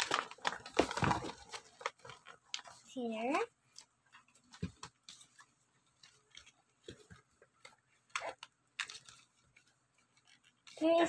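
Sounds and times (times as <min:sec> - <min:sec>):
hands handling plastic packaging: 0:00.0 - 0:11.0.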